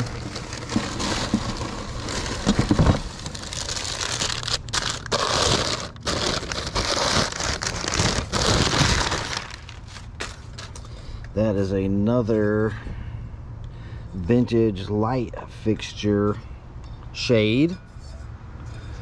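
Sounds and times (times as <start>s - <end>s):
packing paper crackling: 0.0s - 10.9s.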